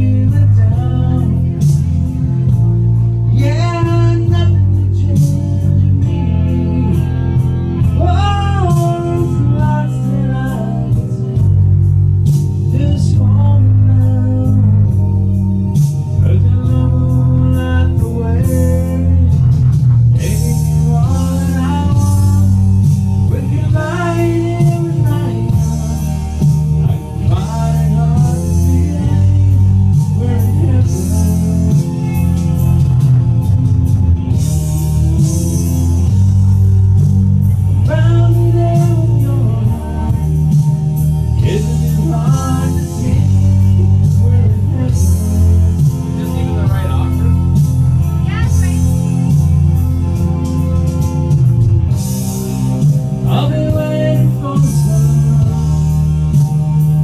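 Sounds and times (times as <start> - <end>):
person singing: 0.0 - 11.9, 16.1 - 33.2, 37.5 - 40.7, 41.3 - 49.4, 53.2 - 55.9
guitar-led karaoke backing track: 0.0 - 57.0.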